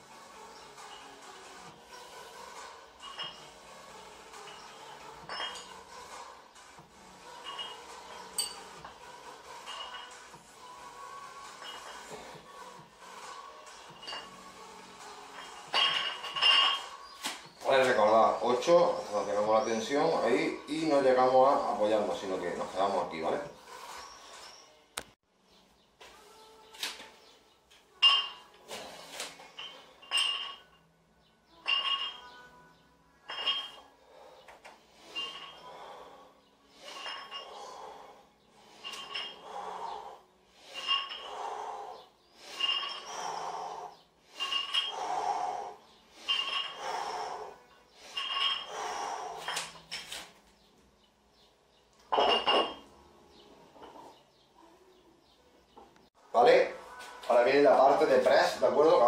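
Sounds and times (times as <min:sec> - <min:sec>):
dumbbell plates clinking: 0:02.4 - 0:06.2, 0:07.2 - 0:10.5, 0:11.2 - 0:19.0, 0:28.0 - 0:30.9, 0:31.5 - 0:32.6, 0:33.2 - 0:36.1, 0:36.7 - 0:50.4, 0:52.0 - 0:53.0.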